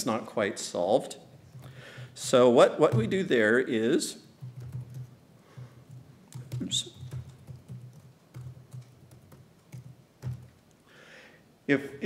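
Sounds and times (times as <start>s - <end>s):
keyboard keystrokes: 4.4s - 5.1s, 5.9s - 10.7s.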